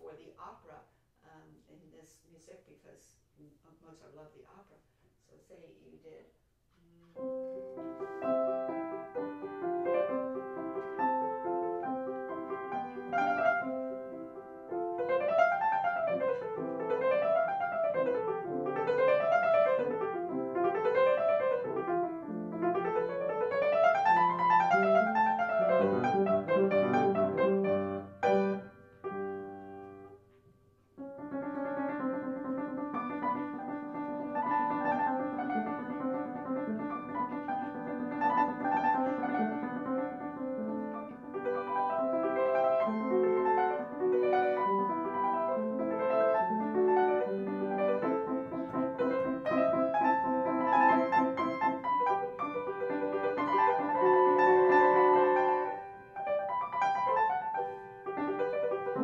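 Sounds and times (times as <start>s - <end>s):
upright piano playing: 7.2s - 30.3s, 31.0s - 59.0s.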